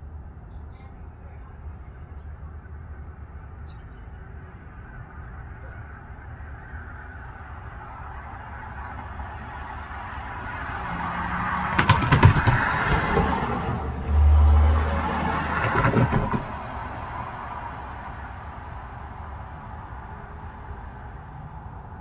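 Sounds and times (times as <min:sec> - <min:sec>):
motor vehicle passing: 0:05.3 - 0:22.0.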